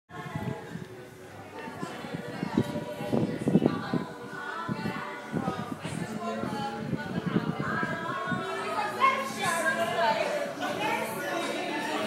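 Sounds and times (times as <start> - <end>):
bar chatter of voices: 0.1 - 12.0.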